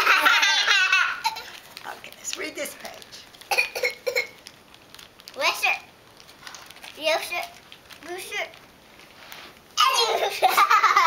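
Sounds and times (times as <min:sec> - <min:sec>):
young child laughing: 0:09.8 - 0:11.0.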